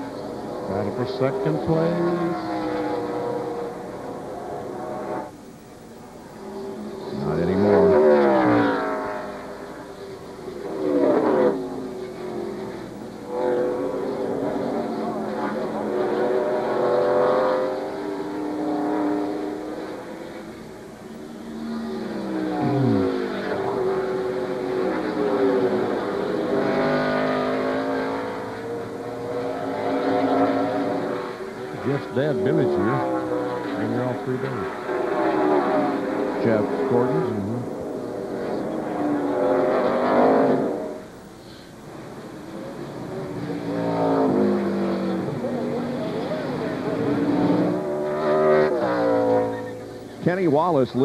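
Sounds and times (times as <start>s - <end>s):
race car engines passing: 0.0s - 51.0s.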